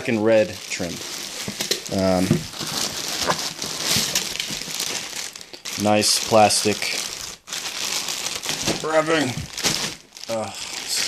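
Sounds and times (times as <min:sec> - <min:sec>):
man talking: 0:00.0 - 0:01.0, 0:01.9 - 0:02.4, 0:05.8 - 0:07.0, 0:08.7 - 0:09.5, 0:10.3 - 0:11.0
plastic bag crinkling: 0:00.0 - 0:11.0.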